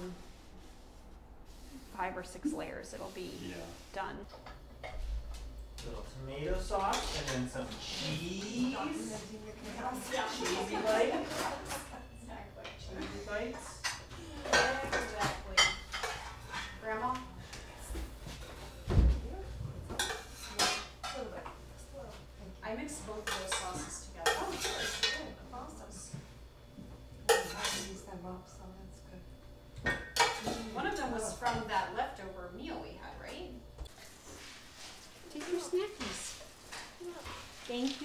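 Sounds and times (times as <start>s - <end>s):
cutlery clinking: 20.0s - 21.2s, 23.2s - 25.2s, 29.9s - 31.0s
utensils clinking in metal pots: 23.2s - 25.3s.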